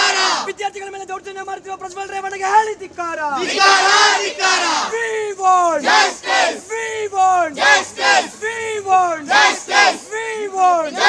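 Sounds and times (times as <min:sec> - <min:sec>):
women chanting slogans: 0:00.0 - 0:00.5, 0:03.4 - 0:05.0, 0:05.8 - 0:06.6, 0:07.5 - 0:08.4, 0:09.2 - 0:10.1.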